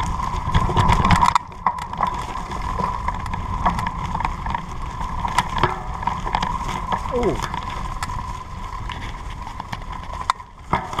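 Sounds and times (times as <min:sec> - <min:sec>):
footsteps on forest path: 0:00.0 - 0:11.0.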